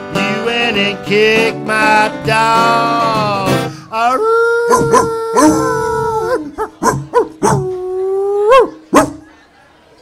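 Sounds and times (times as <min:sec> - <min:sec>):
man howling and yelping like dog: 0:04.1 - 0:08.8.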